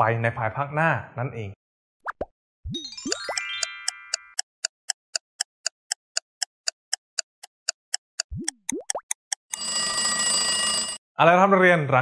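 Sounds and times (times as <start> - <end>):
clock ticking: 3.0 - 9.8.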